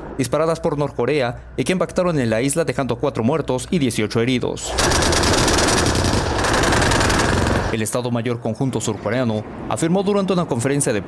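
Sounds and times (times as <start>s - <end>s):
automatic cannon fire: 4.7s - 7.8s.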